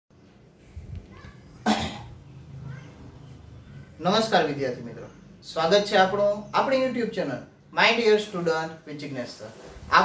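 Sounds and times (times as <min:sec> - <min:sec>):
man coughing: 0:01.6 - 0:02.2.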